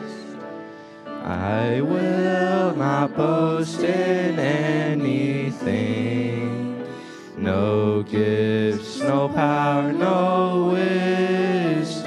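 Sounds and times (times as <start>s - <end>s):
group of young voices singing a hymn: 1.2s - 12.0s.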